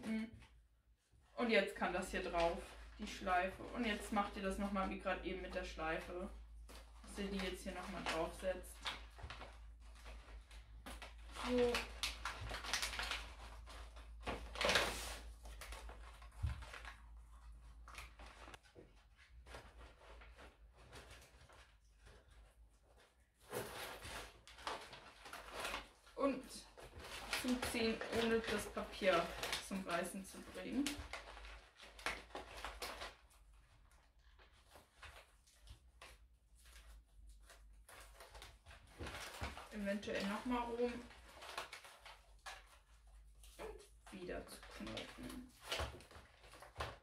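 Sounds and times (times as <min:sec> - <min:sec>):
wrapping paper crinkling: 0:01.7 - 0:47.0.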